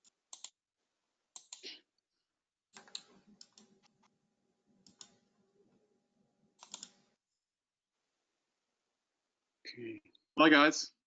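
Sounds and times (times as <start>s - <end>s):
faint computer clicks: 6.6s - 7.0s.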